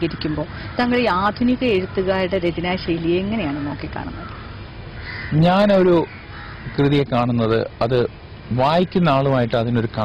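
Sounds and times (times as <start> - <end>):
man speaking: 5.3 - 6.1, 6.7 - 10.0.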